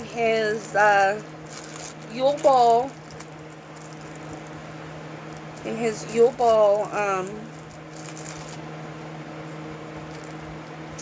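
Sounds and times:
steady low hum: 0.0 - 11.0
snow globe rustling in hands: 0.2 - 4.7, 5.3 - 8.6.

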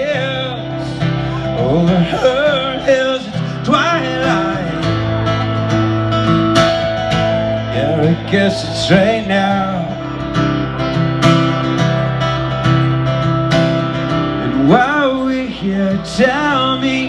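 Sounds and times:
man singing: 0.0 - 5.5, 7.5 - 10.2, 14.4 - 17.0
strummed acoustic guitar: 0.0 - 17.0.

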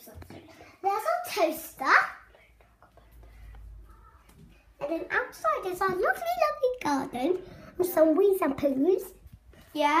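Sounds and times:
faint whispered voice: 2.2 - 4.9.

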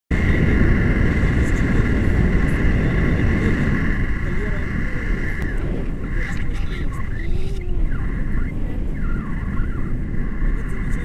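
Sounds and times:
wind rumbling over microphone: 0.1 - 11.0
high steady whistle: 6.9 - 10.4.

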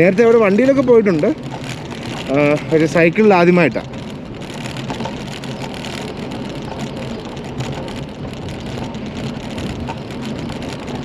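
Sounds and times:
bike rattles and ticks: 0.0 - 11.0
bike rolling on bricks: 0.0 - 11.0.

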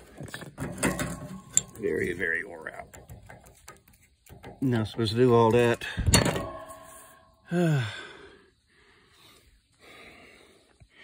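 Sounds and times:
man sighing: 7.4 - 8.4
faint breathy noise: 7.4 - 11.0.

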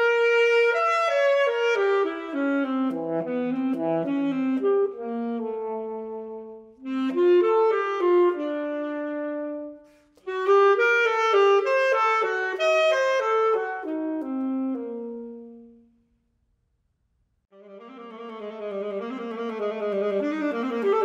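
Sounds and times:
solo alto saxophone: 0.0 - 16.2, 17.5 - 21.0.

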